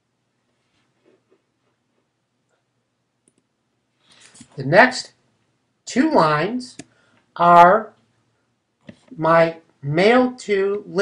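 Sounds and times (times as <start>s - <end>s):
computer mouse clicks: 3.2s - 3.5s.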